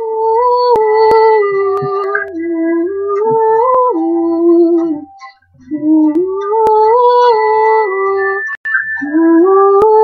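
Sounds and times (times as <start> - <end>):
backing track with soft beat: 0.0 - 10.0.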